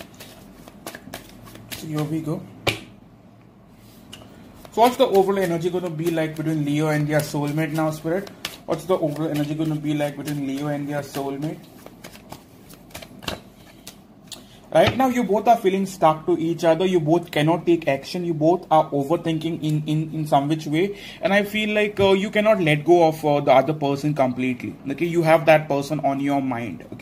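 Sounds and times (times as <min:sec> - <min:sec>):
cards shuffling and snapping: 0:00.0 - 0:02.8, 0:04.6 - 0:14.5.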